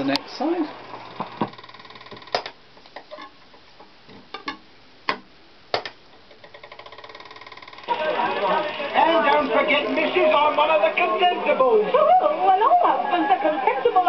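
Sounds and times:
record surface noise: 0.0s - 14.0s
faint rapid ticking: 1.0s - 2.4s, 6.4s - 8.0s.

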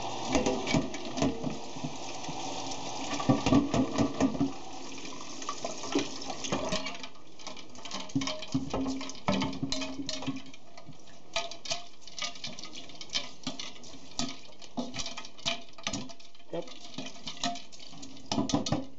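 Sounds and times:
spoon stirring and scraping: 0.0s - 2.4s, 5.6s - 18.9s
tap water running into metal bowl: 0.0s - 18.9s.

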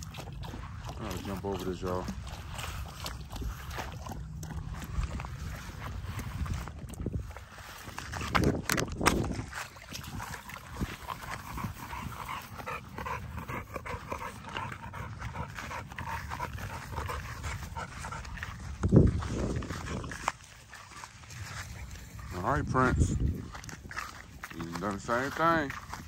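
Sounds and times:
wading in shallow water: 0.0s - 26.0s.

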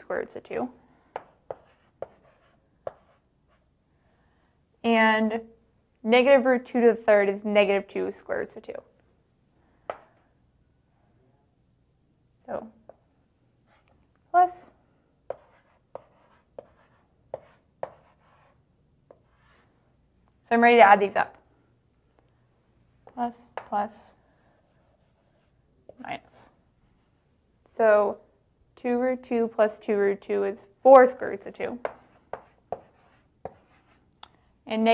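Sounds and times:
chalk tapping and writing on blackboard: 1.1s - 3.7s, 9.9s - 10.2s, 12.8s - 13.1s, 15.3s - 19.7s, 23.1s - 26.1s, 31.8s - 34.1s.

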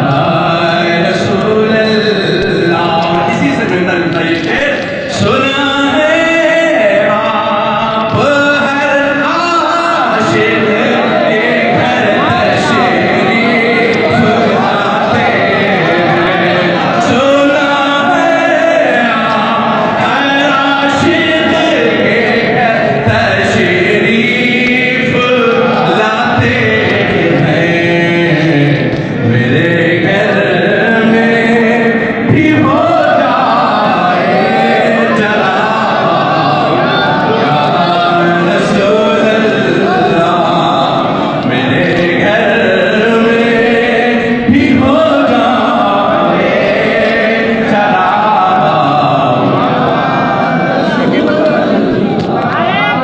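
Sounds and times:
voices chanting together: 0.0s - 53.0s.

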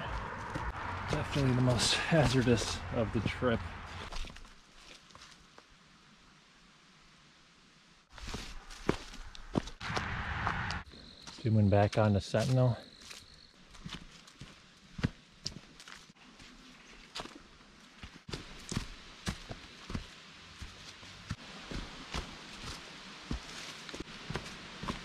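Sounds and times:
footsteps on dry leaves: 0.0s - 5.5s, 8.1s - 9.8s, 12.4s - 25.0s.

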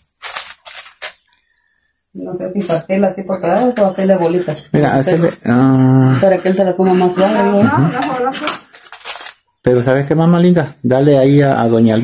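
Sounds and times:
plastic bags crinkling: 0.1s - 1.2s, 8.7s - 9.4s.

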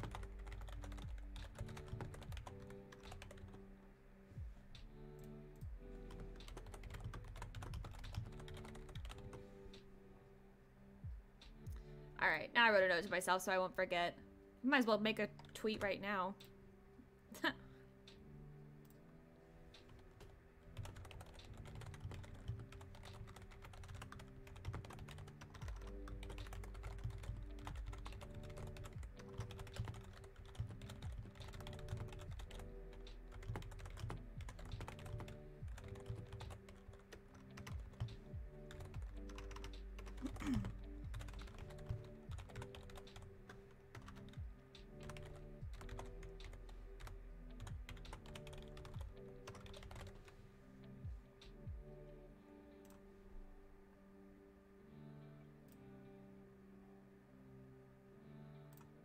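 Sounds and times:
typing on a keyboard: 0.0s - 3.6s, 6.1s - 9.4s, 19.9s - 43.3s, 45.0s - 50.2s
soft music with bass: 0.0s - 13.2s, 14.1s - 59.0s.

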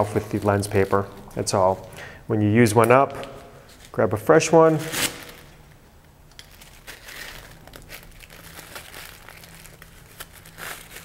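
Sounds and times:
paper crinkling and rustling: 0.0s - 1.9s, 6.3s - 11.0s.

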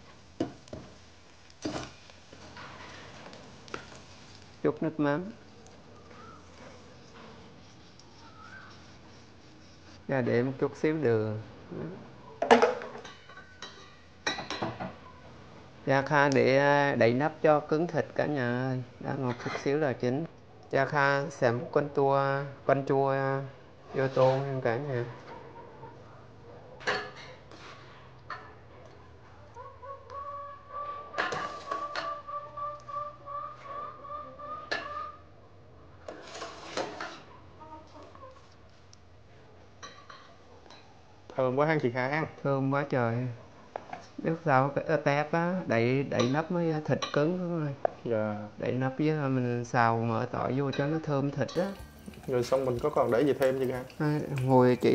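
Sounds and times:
fowl calling: 29.6s - 35.2s
utensils clicking against steel pot: 51.6s - 54.9s.

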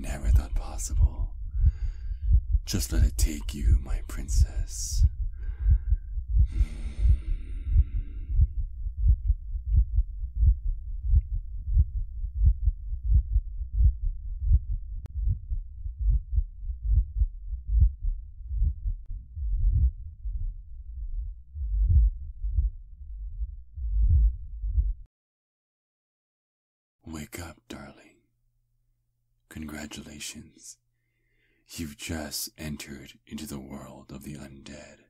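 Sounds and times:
heartbeat: 0.0s - 25.1s.

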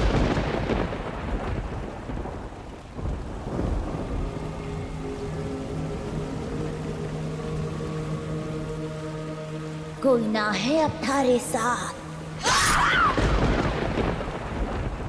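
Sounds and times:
low rumbling noise swell: 3.0s - 15.0s
sustained droning chord: 3.6s - 12.4s.

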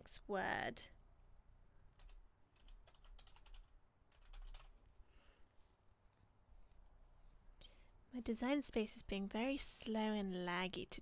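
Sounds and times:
computer keyboard typing: 2.0s - 4.8s.

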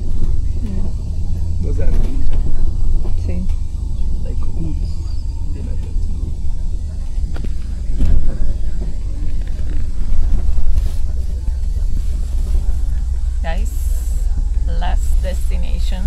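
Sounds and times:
vehicle engine and road rumble: 0.0s - 16.0s.

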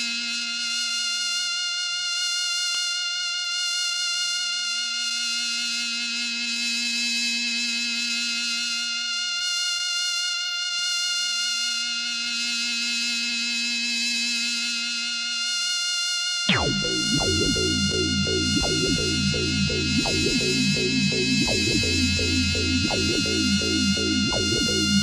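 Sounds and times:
buzzy synthesizer drone: 16.5s - 25.0s
low synthesizer note: 16.5s - 25.0s.

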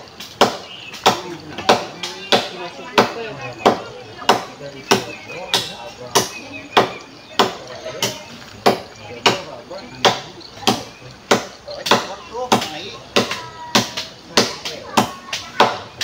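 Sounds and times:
hand tool striking rhythmically: 0.0s - 16.0s.

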